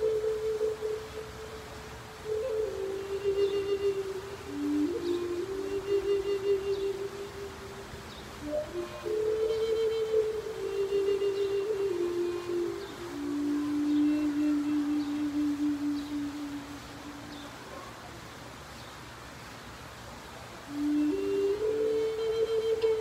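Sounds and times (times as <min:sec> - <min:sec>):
flute slow melody: 0:00.0 - 0:17.8, 0:20.7 - 0:23.0.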